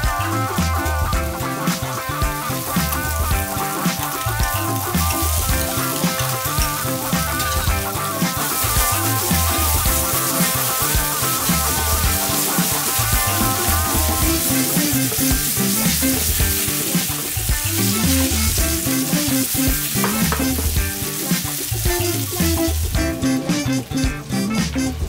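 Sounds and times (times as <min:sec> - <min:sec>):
fish sizzling in a frying pan: 0:00.0 - 0:23.8
background music with bass line: 0:00.0 - 0:25.0.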